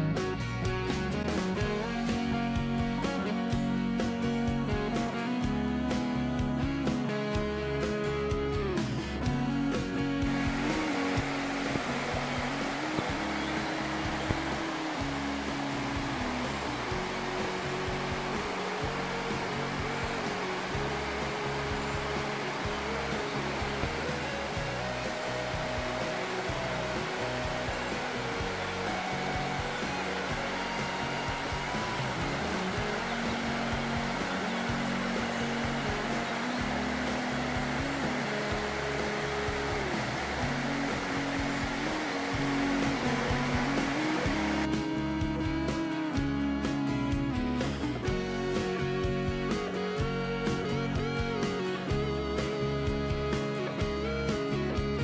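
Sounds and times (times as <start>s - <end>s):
music of slow held notes: 0.0s - 55.0s
plucked guitar: 0.0s - 55.0s
water rushing over a weir: 10.2s - 44.7s.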